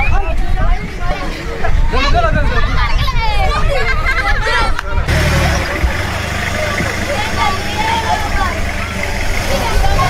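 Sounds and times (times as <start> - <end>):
people talking: 0.0 - 10.0
truck engine running: 5.0 - 10.0.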